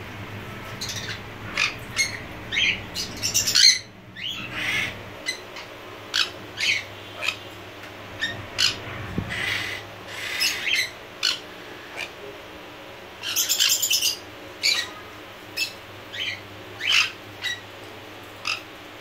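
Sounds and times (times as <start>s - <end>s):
parrots squawking: 0.7s - 12.2s, 13.2s - 17.6s, 18.3s - 18.7s.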